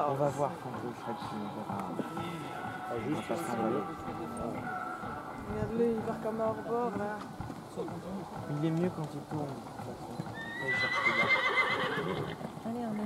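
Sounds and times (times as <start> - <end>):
hoofbeats on sand: 0.0 - 13.0
horse whinnying: 10.3 - 12.6.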